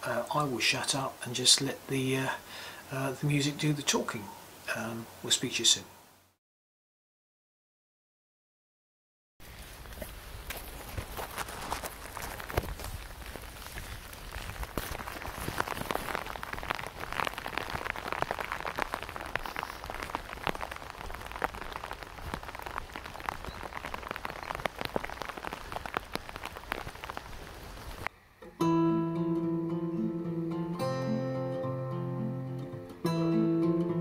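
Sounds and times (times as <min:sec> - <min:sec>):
rain hiss: 0:00.0 - 0:06.4, 0:09.4 - 0:28.1
raindrops tapping on a hood: 0:09.8 - 0:28.1.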